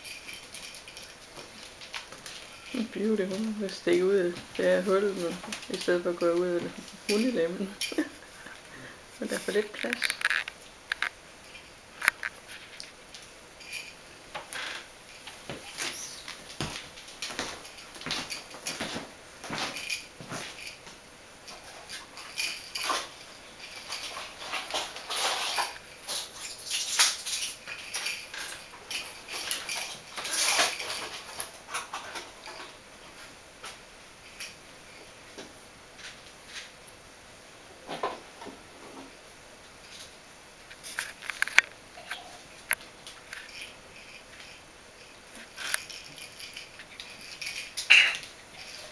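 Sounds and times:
claws scratching and scraping: 9.3 - 11.2.

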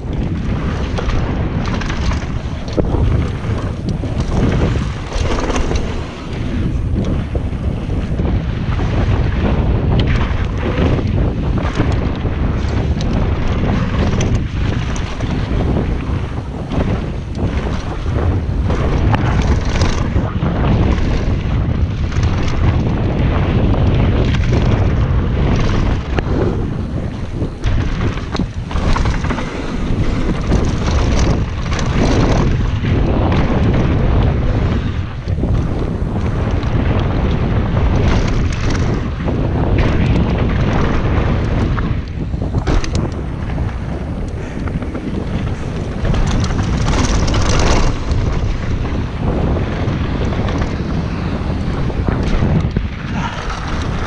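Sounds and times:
bike clattering over bumps: 0.0 - 54.0
wind on camera microphone: 0.0 - 54.0
tyre rumble on dirt: 0.8 - 8.4, 24.1 - 41.7, 42.4 - 54.0.

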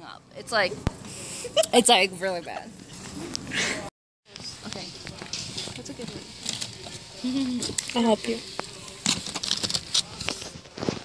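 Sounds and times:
plastic packs clicking and rustling: 8.8 - 11.0.

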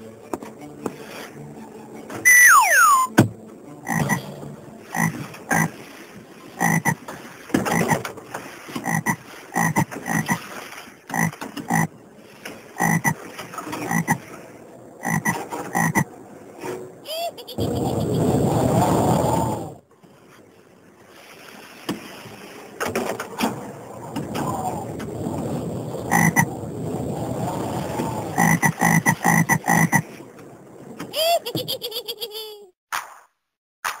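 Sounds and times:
loud falling whistle: 2.3 - 3.2
frog croaking: 3.8 - 4.2, 4.9 - 5.7, 6.6 - 7.0, 8.8 - 10.4, 11.1 - 11.9, 12.8 - 13.2, 13.8 - 14.2, 15.0 - 16.1, 26.1 - 26.5, 28.4 - 30.0.

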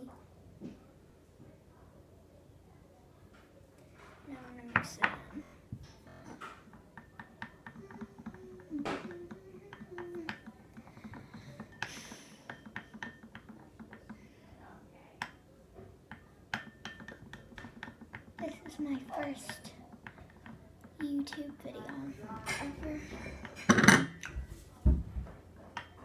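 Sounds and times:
utensil tapping glass dish: 4.7 - 24.5, 25.7 - 26.0.

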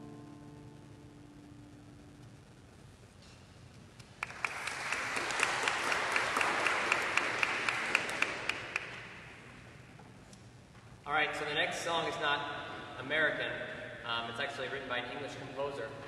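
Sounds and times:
audience applauding: 4.0 - 9.4.

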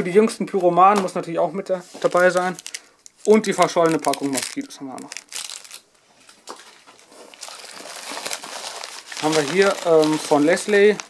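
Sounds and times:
plastic film crinkling: 1.9 - 11.0.

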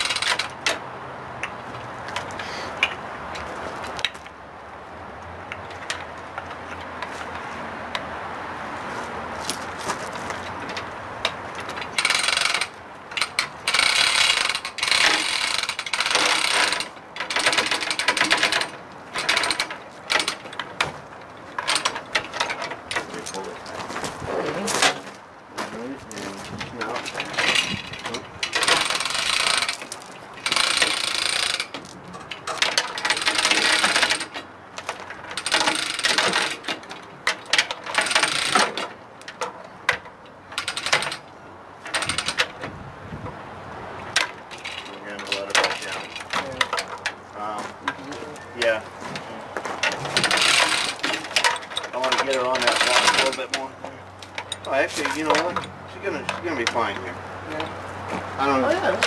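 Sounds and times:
chain hoist ratcheting: 0.0 - 0.8, 10.4 - 23.6, 26.6 - 42.6, 44.1 - 47.2, 49.8 - 57.7
chain clatter: 11.7 - 23.8, 26.8 - 39.4, 49.8 - 53.6.

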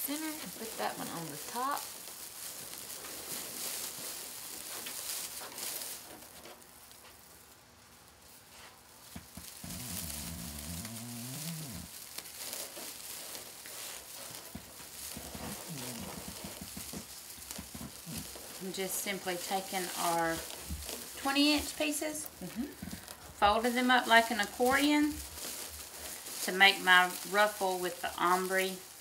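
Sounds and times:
plastic mesh rustling and crinkling: 0.0 - 29.0
low voice murmuring: 15.6 - 16.3, 22.4 - 22.9.

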